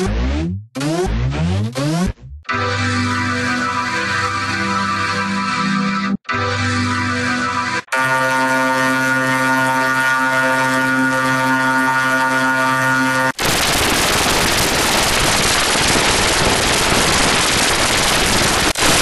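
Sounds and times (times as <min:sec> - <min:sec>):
buzzy electronic tone: 0:00.0 - 0:19.0
static-like hiss: 0:13.4 - 0:19.0.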